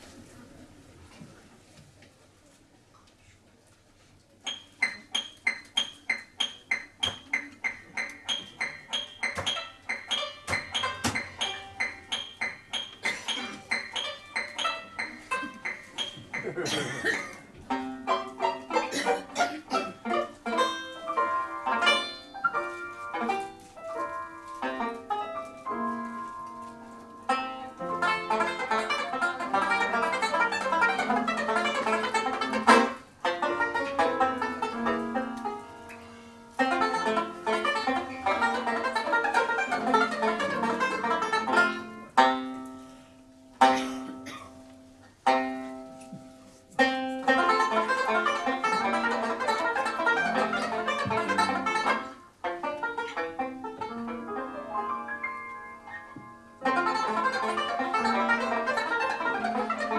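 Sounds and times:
single ringing banjo notes: 4.5 - 16.9, 17.6 - 59.9
banjo playing fast runs: 7.6 - 16.8, 17.6 - 23.6, 24.6 - 26.0, 27.2 - 35.7, 36.6 - 42.6, 46.8 - 55.3, 56.6 - 59.9.

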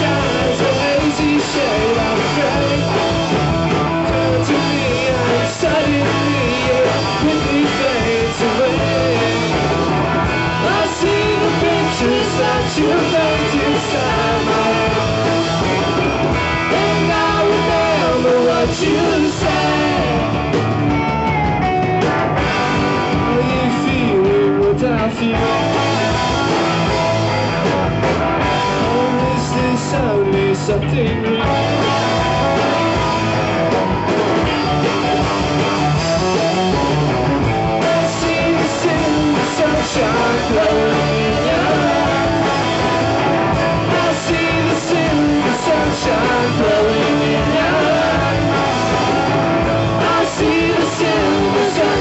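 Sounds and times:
person singing lead vocal: 0.0 - 22.0, 23.0 - 27.0, 28.6 - 32.9, 37.6 - 52.0
electric guitars: 0.0 - 52.0
rock band playing: 0.0 - 52.0.

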